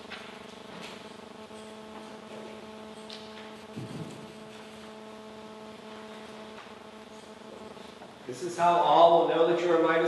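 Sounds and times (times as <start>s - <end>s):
hum of held tones: 0.0s - 10.0s.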